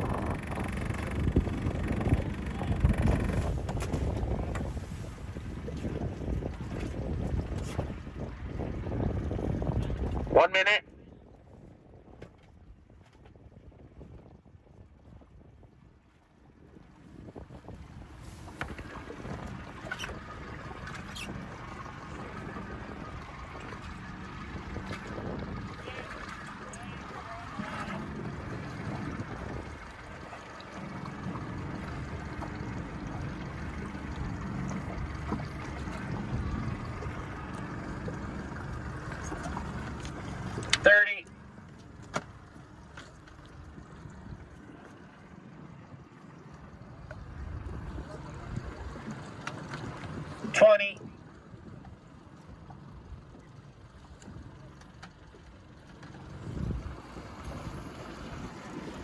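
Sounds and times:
wind on microphone: 0.0 - 40.8, 46.8 - 49.1, 56.4 - 59.0
boat on open water: 0.0 - 59.0
faint voices: 25.7 - 28.3.

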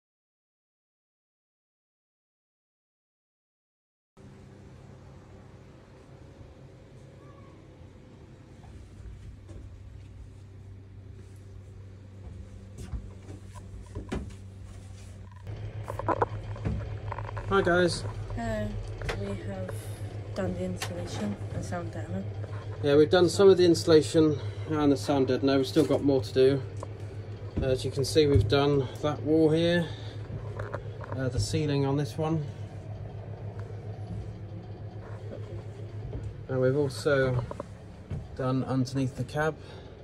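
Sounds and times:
steady low hum: 4.2 - 40.0.

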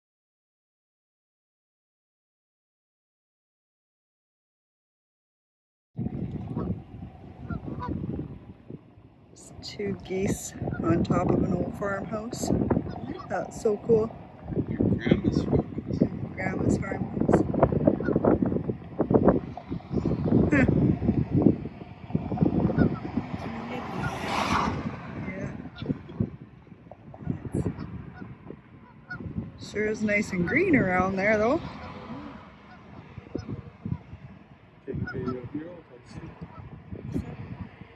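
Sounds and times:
wind buffeting microphone: 6.0 - 37.9
geese honking: 6.4 - 8.2, 9.4 - 14.7, 15.3 - 20.8, 22.1 - 24.9, 25.6 - 34.4.

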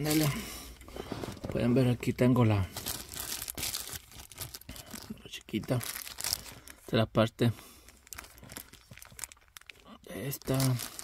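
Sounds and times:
plastic bag crinkling: 0.0 - 0.4, 2.3 - 7.0, 7.8 - 11.0.

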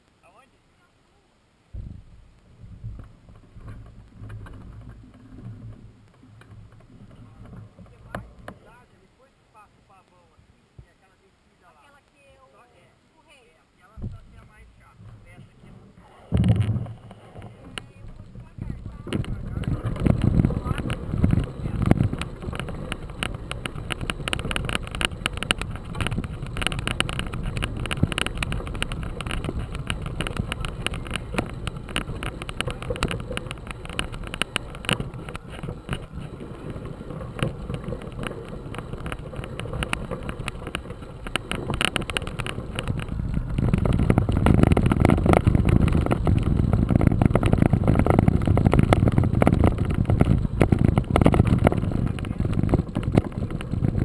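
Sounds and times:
wind rumble on microphone: 1.7 - 8.9, 13.9 - 54.0
bike rattling: 1.8 - 9.0, 14.0 - 54.0
bike tyres crunching over gravel: 1.8 - 9.1, 14.1 - 54.0.

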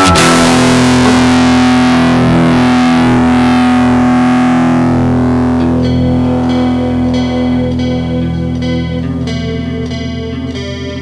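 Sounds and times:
distorted electric guitar: 0.0 - 11.0.

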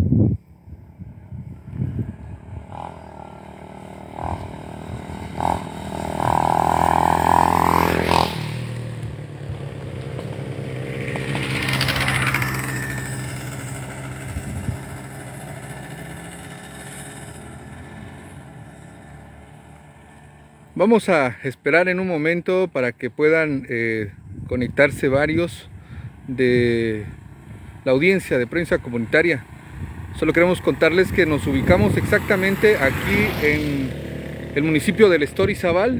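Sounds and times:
vehicles passing on road: 0.0 - 35.9.

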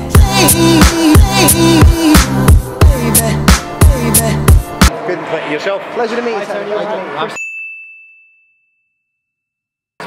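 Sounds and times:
high bell-like ding: 7.4 - 9.7.

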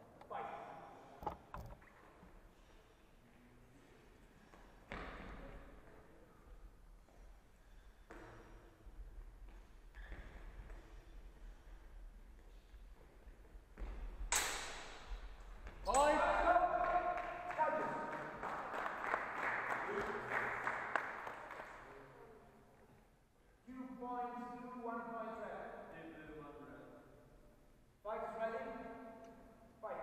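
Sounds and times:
faint hall room noise: 0.0 - 30.0.

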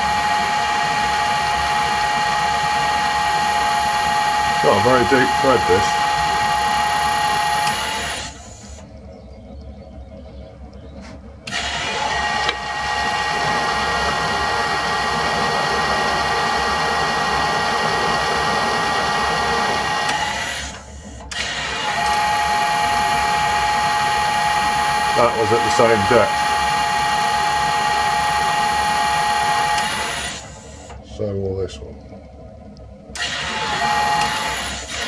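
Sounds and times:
metal lathe whining: 0.0 - 8.9, 11.4 - 31.3, 33.1 - 35.0.

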